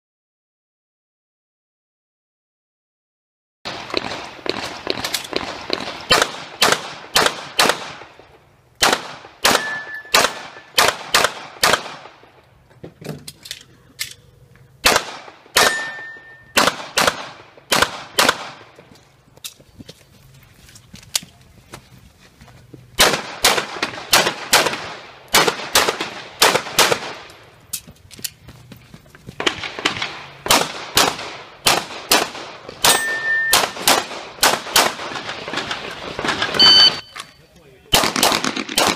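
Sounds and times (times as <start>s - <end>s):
pistol shots: 3.7s - 8.2s, 8.8s - 12.2s, 14.8s - 18.7s, 23.0s - 27.3s, 29.4s - 37.0s, 37.9s - 38.9s
short high ring: 9.6s - 10.2s, 15.6s - 16.6s, 32.9s - 33.6s.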